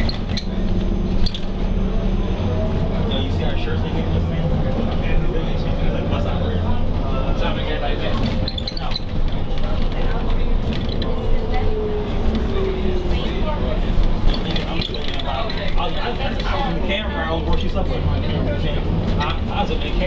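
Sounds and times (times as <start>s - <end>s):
diesel engine rumble: 0.0s - 20.0s
road noise: 0.0s - 20.0s.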